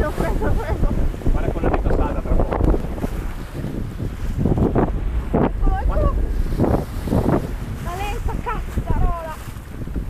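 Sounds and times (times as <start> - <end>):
water rushing along hull: 0.0 - 10.0
waves washing and splashing: 0.0 - 10.0
wind buffeting microphone: 0.0 - 10.0.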